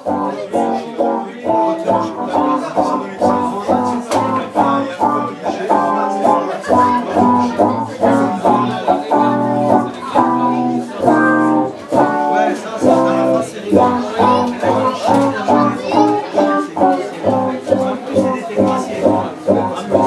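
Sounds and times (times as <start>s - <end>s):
live band playing: 0.0s - 20.0s.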